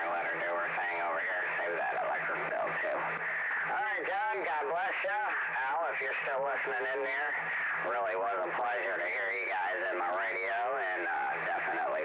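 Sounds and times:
voice over radio speaker: 0:00.0 - 0:12.0.

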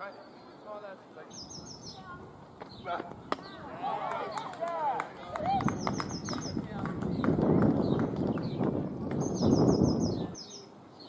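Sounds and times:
bird chirping: 0:00.0 - 0:04.5, 0:05.4 - 0:11.0.

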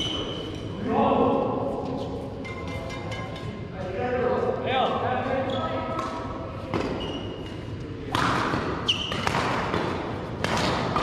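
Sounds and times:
shoes squeaking on floor: 0:00.0 - 0:00.7, 0:05.3 - 0:06.1, 0:06.8 - 0:07.7, 0:08.8 - 0:09.4.

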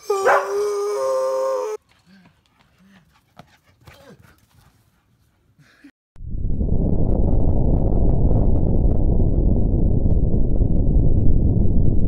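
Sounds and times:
dog howling: 0:00.0 - 0:01.8.

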